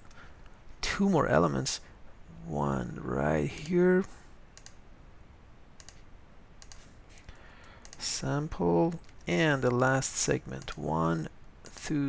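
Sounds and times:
computer mouse and keyboard clicks: 4.6s - 4.8s, 5.8s - 6.0s, 6.6s - 8.1s, 10.5s - 10.8s.

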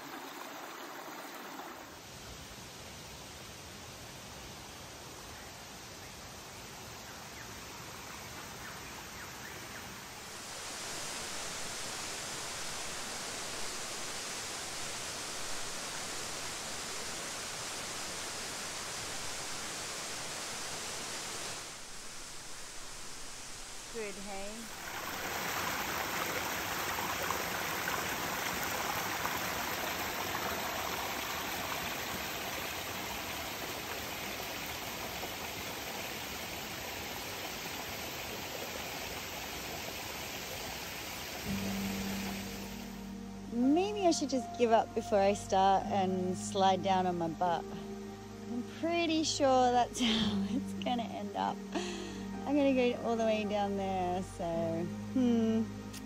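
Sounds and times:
creek water rushing over rocks: 0.0s - 2.4s, 10.1s - 42.9s.

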